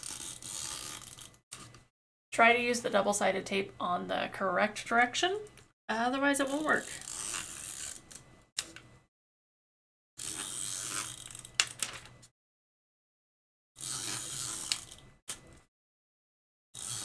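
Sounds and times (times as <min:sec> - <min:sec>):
paper rustling and crackling: 0:11.6 - 0:12.2.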